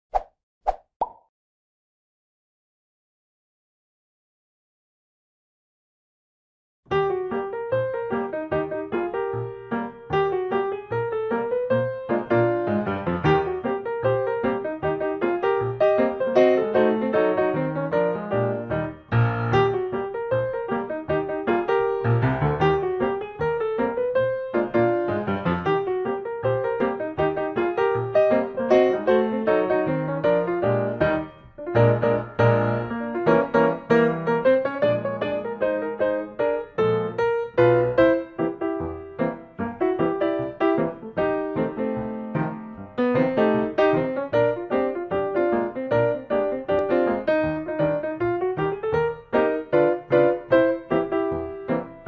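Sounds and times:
pop sound effects: 0:00.1 - 0:01.3
piano music: 0:06.9 - 0:52.0.

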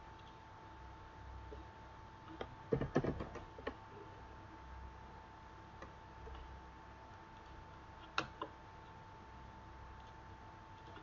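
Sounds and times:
computer mouse clicks: 0:07.3 - 0:09.0, 0:10.0 - 0:11.0.

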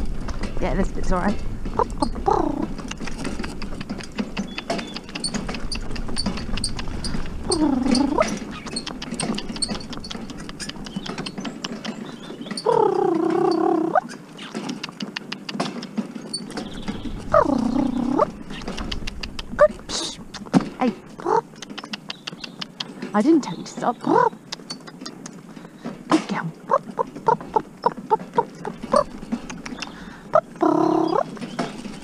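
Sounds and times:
cart rattling: 0:00.0 - 0:21.7, 0:22.4 - 0:32.0
hooves on gravel: 0:00.0 - 0:32.0
drawn-out pitched calls: 0:01.6 - 0:32.0.

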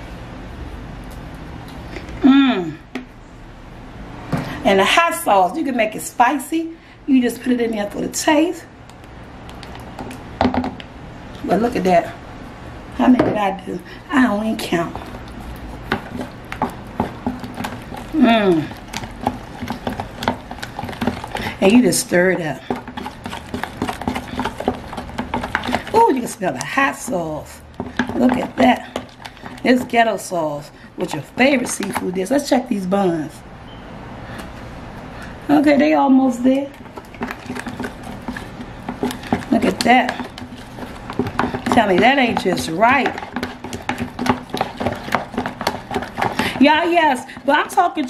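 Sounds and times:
spatula stirring thick sauce: 0:14.2 - 0:32.8, 0:36.7 - 0:48.0.

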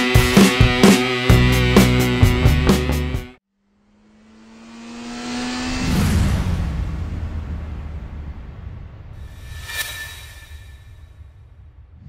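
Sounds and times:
vehicle fly-by whoosh: 0:03.6 - 0:08.2, 0:09.1 - 0:11.2.

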